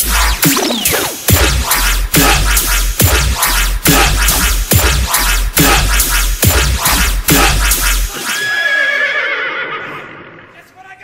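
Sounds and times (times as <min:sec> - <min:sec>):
dubstep heavy bass: 0:00.0 - 0:08.4.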